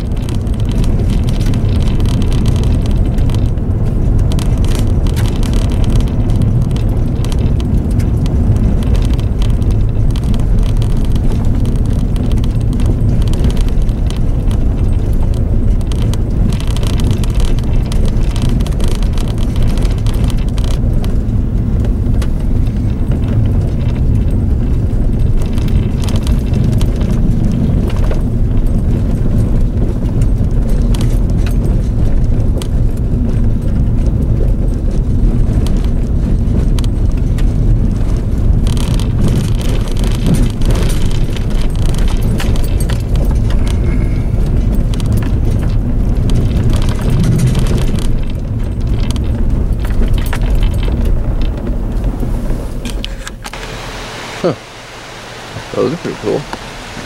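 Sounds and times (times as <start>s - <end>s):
small rattles and clicks: 0.0s - 53.7s
engine and road rumble: 0.0s - 57.0s.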